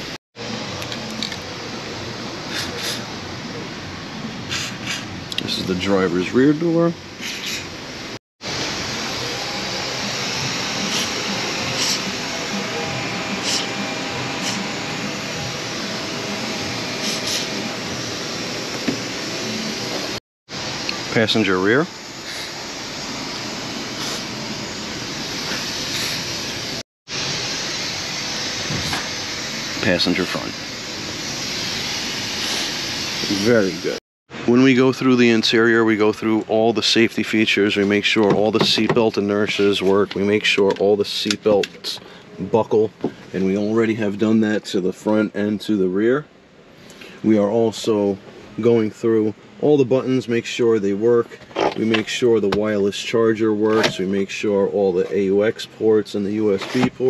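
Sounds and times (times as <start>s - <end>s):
aerosol spray hisses: 8.5s - 20.2s, 22.2s - 34.0s.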